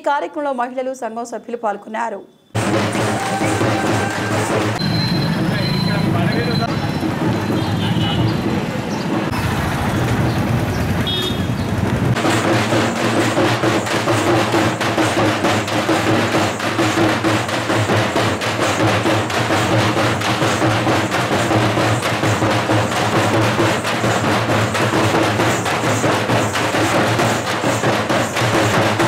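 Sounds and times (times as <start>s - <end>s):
large drums beaten with sticks: 2.6s - 10.6s, 11.8s - 29.0s.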